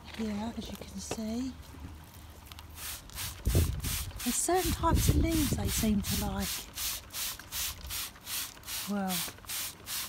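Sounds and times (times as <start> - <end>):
spray bottle hissing sprays: 2.8 - 10.0.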